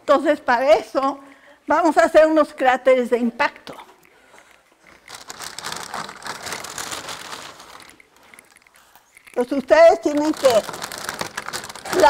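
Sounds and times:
plastic bag crinkling: 4.8s - 12.0s.

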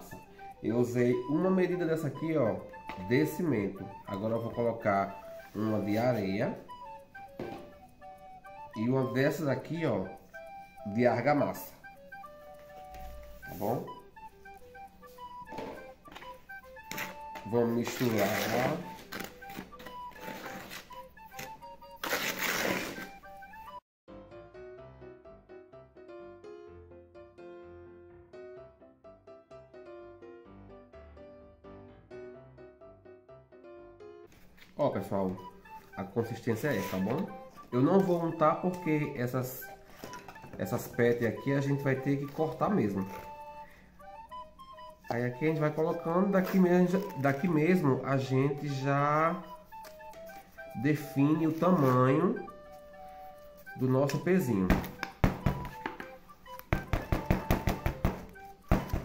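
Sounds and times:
light melody background music: 0.0s - 59.0s.

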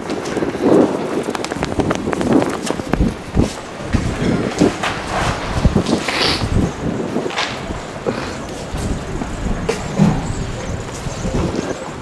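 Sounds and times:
road traffic rumble: 0.0s - 12.0s
low bump: 1.6s - 11.6s.

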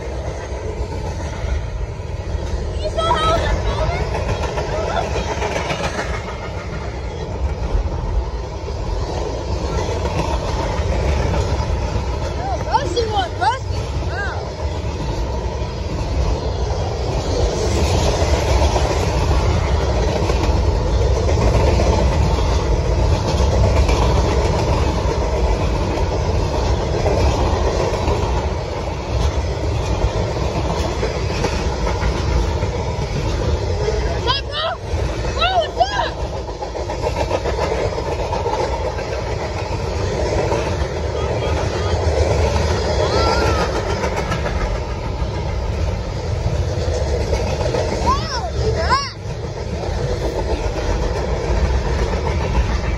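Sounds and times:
train wheels rumbling on rail: 0.0s - 52.9s.

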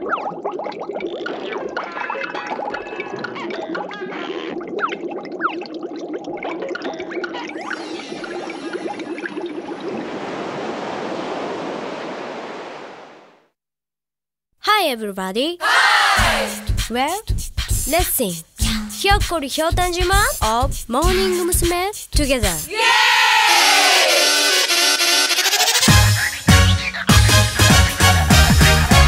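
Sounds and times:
cartoon underwater bubbling: 0.0s - 11.0s, 16.2s - 22.7s, 23.8s - 27.2s
surf-like noise: 10.0s - 13.4s.

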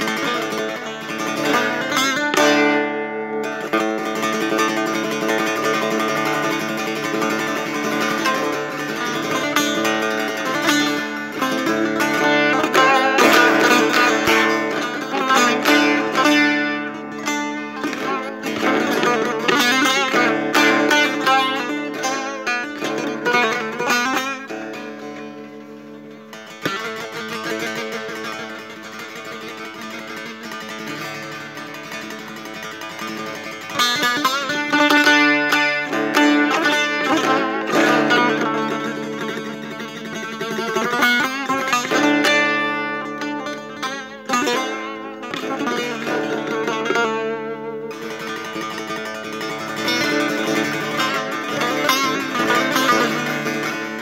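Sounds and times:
long-necked lute plucked: 0.0s - 54.0s.

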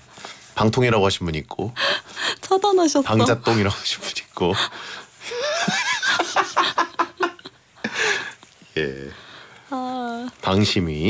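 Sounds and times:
woman and man laughing: 5.3s - 8.0s.

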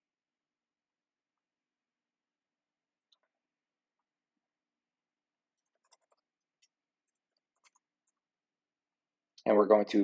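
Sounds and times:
computer keyboard clicks: 5.6s - 8.2s.

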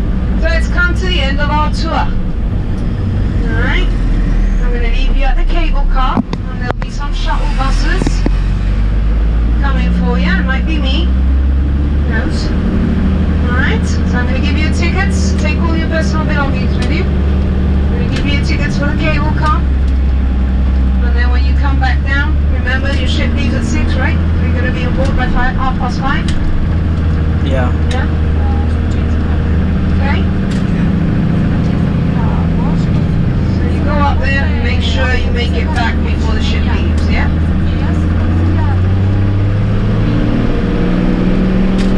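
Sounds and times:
vehicle engine and road noise: 0.0s - 41.9s
voices talking: 3.2s - 11.2s, 13.3s - 17.2s, 17.8s - 19.8s, 20.8s - 39.2s.

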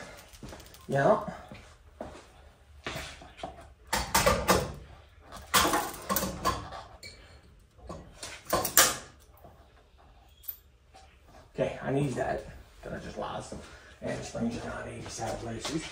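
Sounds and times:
metal tools clanking and rattling: 5.4s - 9.4s.

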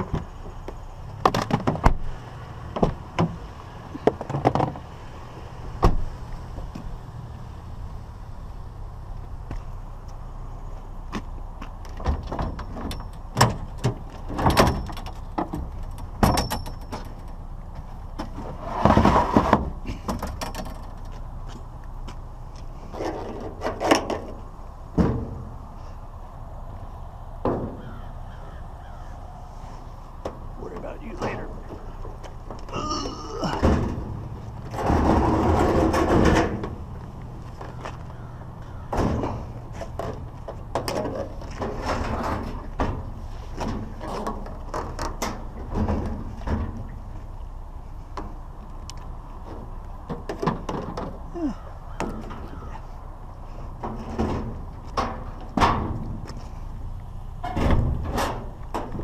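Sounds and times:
truck door and scrap clunking: 0.0s - 5.1s, 5.7s - 7.0s, 11.1s - 26.0s, 31.2s - 47.3s, 53.5s - 56.7s, 57.4s - 59.0s.

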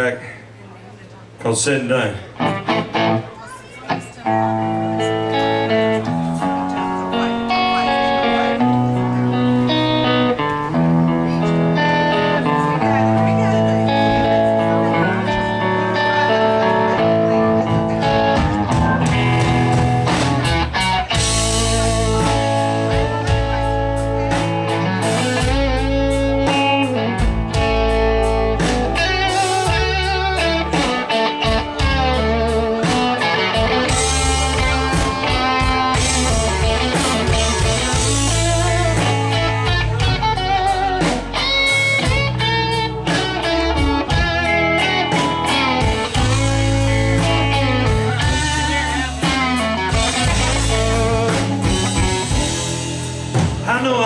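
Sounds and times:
electric guitar: 2.2s - 54.0s
live rock band playing: 2.2s - 54.0s.

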